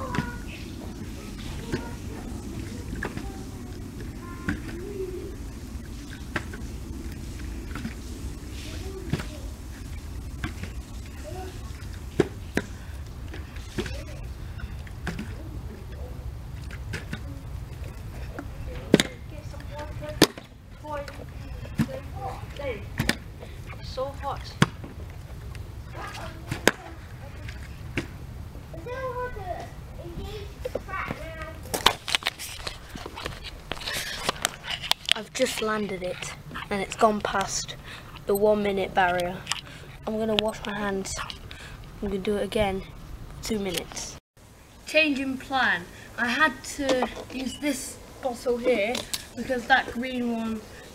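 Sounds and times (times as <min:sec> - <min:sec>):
low background rumble: 0:00.0 - 0:31.7.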